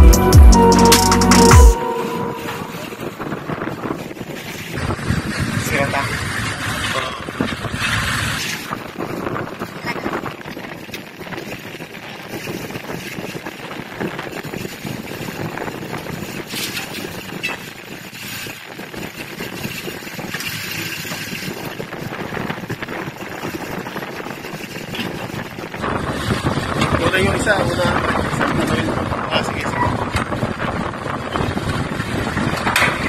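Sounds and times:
engines and traffic hum: 0.0s - 33.0s
wind buffeting microphone: 2.8s - 33.0s.

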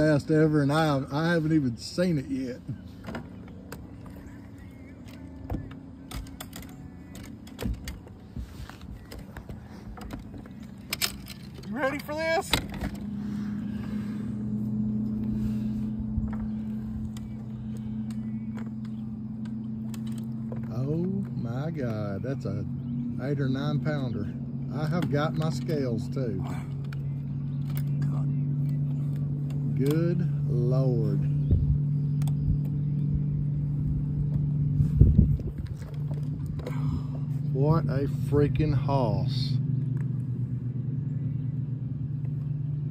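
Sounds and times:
wind buffeting microphone: 31.4s - 37.2s.

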